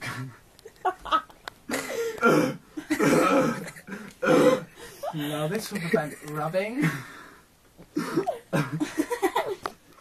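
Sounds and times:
man coughing: 1.7s - 4.7s.

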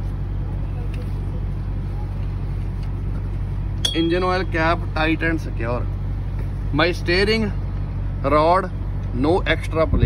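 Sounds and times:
diesel truck idling: 0.0s - 10.0s.

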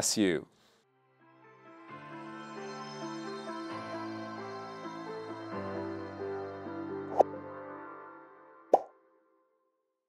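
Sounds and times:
soft background music: 1.0s - 9.5s.

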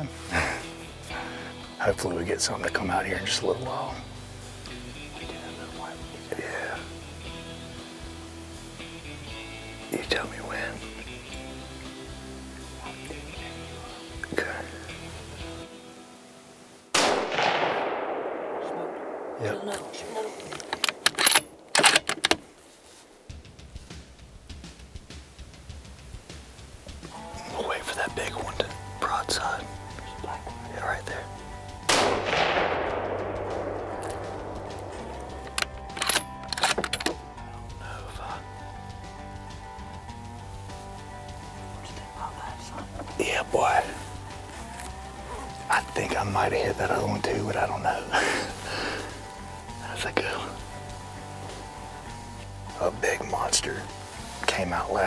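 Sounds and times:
background music: 0.0s - 55.0s
rifle shots with echo: 16.9s - 22.1s, 31.9s - 35.0s
rifle bolt clicks: 20.4s - 22.4s, 35.4s - 37.2s.

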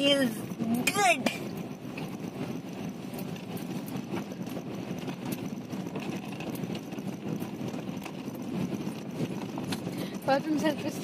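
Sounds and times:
stones clicking under tyres: 0.0s - 11.0s
tyres rumbling on gravel: 0.0s - 11.0s.

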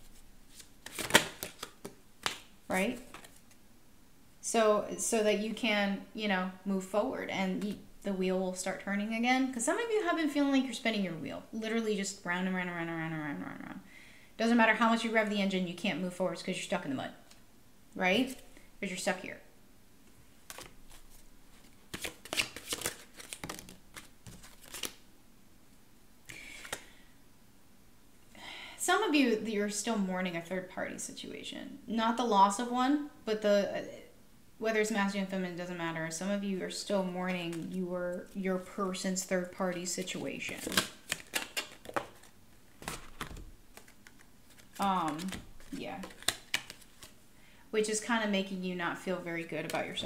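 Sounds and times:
cards being shuffled by hand: 0.0s - 3.6s, 20.4s - 25.0s, 26.3s - 26.9s, 39.7s - 47.2s.

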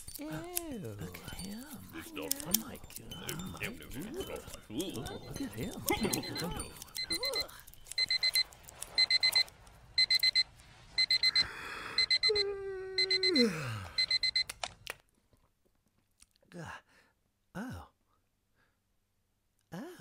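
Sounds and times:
digital alarm clock beeping: 5.1s - 13.4s, 14.0s - 14.5s.

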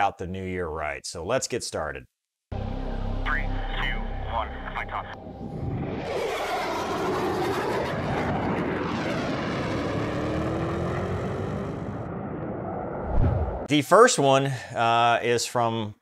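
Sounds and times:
jet aircraft flying past: 3.8s - 13.7s.

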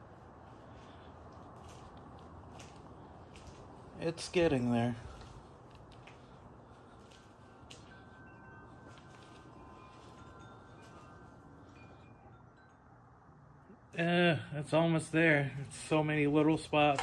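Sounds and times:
faint ringing tones: 6.2s - 15.9s.

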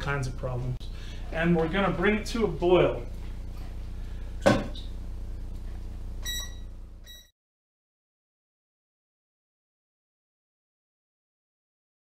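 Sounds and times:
low hum: 0.0s - 7.3s
short electronic beeps: 6.2s - 7.3s.

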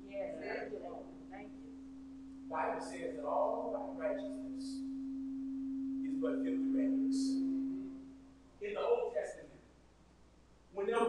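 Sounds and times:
steady pure tone: 0.0s - 11.0s.

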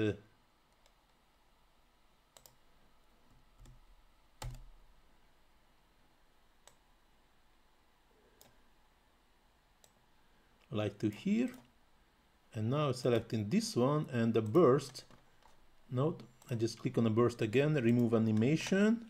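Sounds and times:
faint room hiss: 0.0s - 19.0s
computer mouse clicks: 0.7s - 1.2s, 2.4s - 2.6s, 3.6s - 3.8s, 6.6s - 6.8s, 8.4s - 8.6s, 9.8s - 10.0s.

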